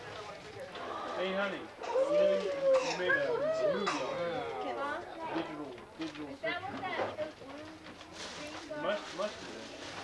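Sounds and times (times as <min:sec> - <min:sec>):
wrapping paper rustle: 0:07.3 - 0:10.0.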